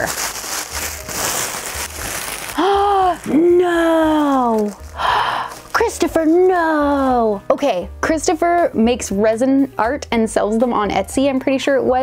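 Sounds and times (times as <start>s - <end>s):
tissue paper rustling and crinkling: 0.0s - 7.2s.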